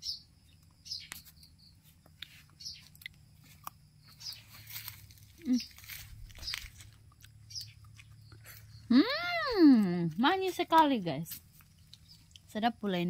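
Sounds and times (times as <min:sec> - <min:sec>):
biting and chewing fruit: 0:00.4 - 0:12.7.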